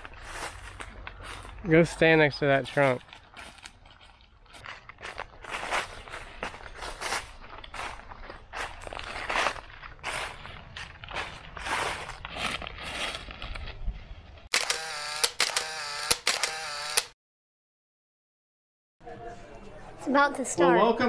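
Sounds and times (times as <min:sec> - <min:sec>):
footsteps crunching dry leaves: 0:00.0 - 0:14.4
sharp clicks: 0:14.5 - 0:17.2.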